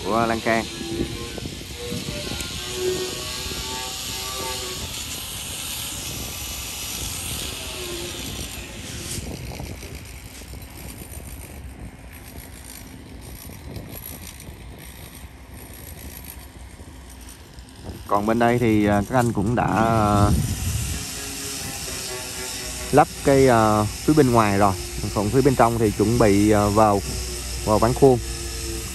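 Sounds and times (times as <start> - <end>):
steady hiss: 0.0 - 10.9, 15.8 - 28.9
low rumble: 19.1 - 28.9.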